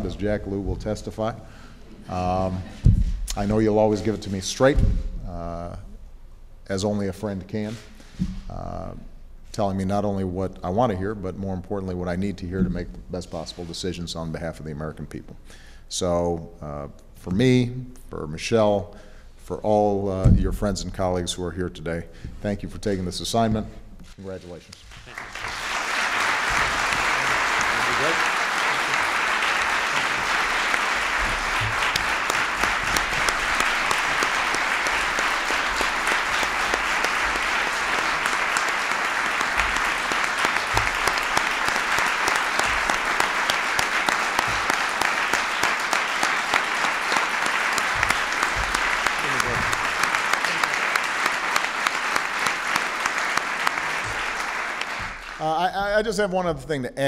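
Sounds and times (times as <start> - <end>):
audience applause: 24.8 - 55.5.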